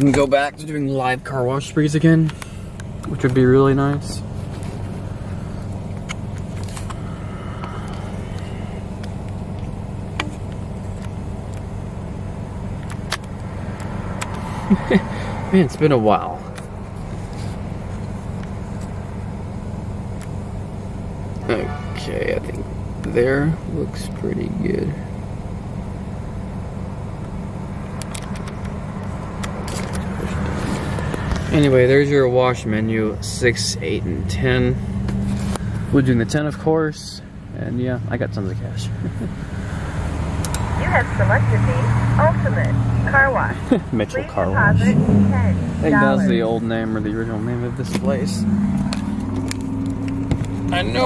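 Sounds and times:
car engine idling: 0:00.0 - 0:51.0.

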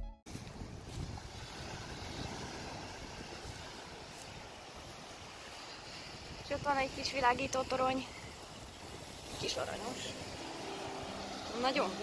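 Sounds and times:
wind rumbling on microphone: 0:00.3 - 0:12.0
waves breaking on rocks: 0:00.6 - 0:12.0.

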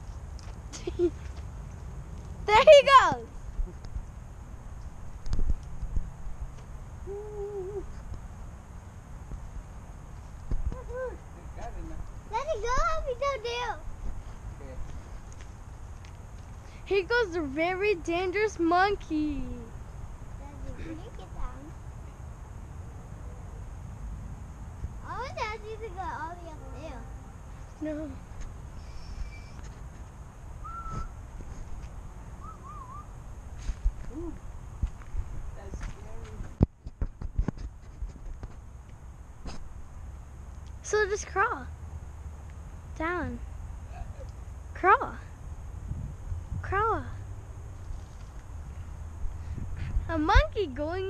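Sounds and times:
person hooting: 0:07.1 - 0:07.9
bird whistling: 0:28.8 - 0:29.6, 0:30.6 - 0:31.2, 0:32.4 - 0:33.1.

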